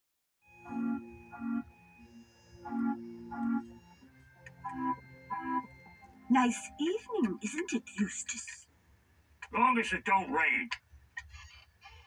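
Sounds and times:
organ-like keyboard chords: 0:00.4 - 0:08.0.

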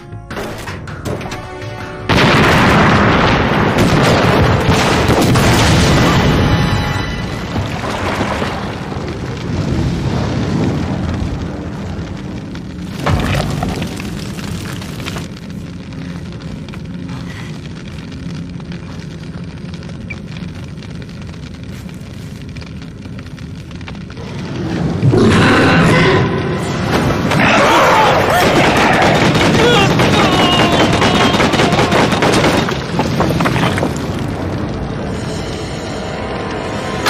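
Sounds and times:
tense film music: 0:00.0 - 0:33.2, 0:33.9 - 0:37.0
low rumbling drone: 0:02.1 - 0:28.2, 0:33.9 - 0:37.0.

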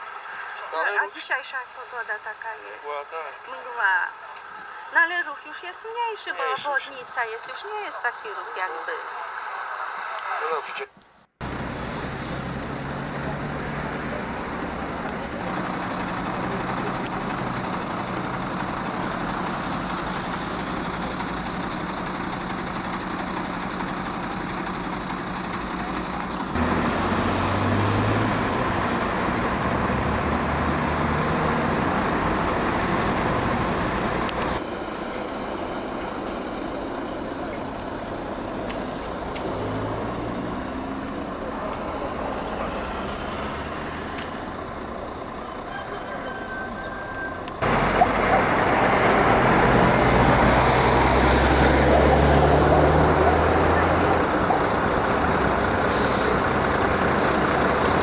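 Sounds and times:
heavy vehicle engine: 0:00.0 - 0:05.0, 0:11.3 - 0:58.0
road traffic noise: 0:00.0 - 0:58.0.

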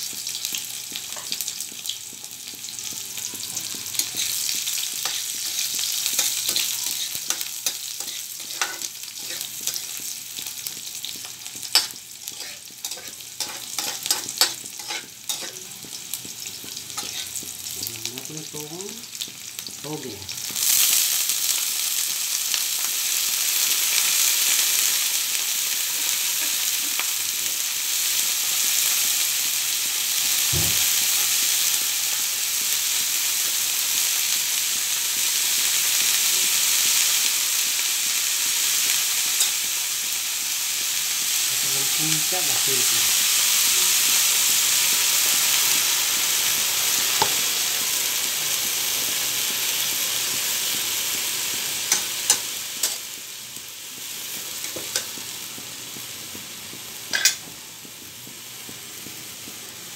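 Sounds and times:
food sizzling in oil: 0:00.0 - 0:59.9
metal spatula scraping a wok: 0:04.0 - 0:09.9, 0:11.7 - 0:15.7, 0:17.0 - 0:17.4.

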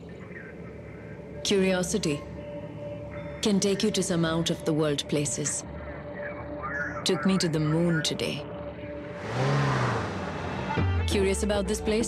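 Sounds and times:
low steady music tone: 0:00.0 - 0:12.0
vehicle driving past fast: 0:09.1 - 0:11.0.

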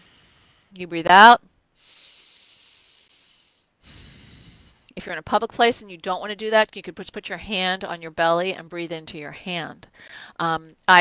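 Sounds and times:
woman breathing through nostril: 0:00.0 - 0:00.8, 0:01.8 - 0:04.9, 0:10.0 - 0:10.4.

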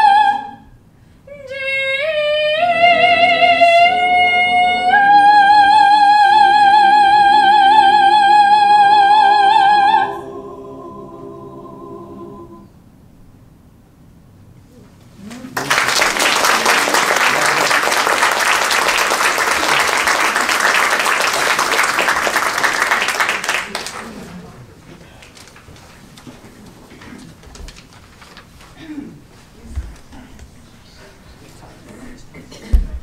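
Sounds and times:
a cappella choir singing: 0:00.0 - 0:00.7, 0:01.3 - 0:12.8
audience applause: 0:15.3 - 0:25.6
room rustle: 0:24.3 - 0:33.0.

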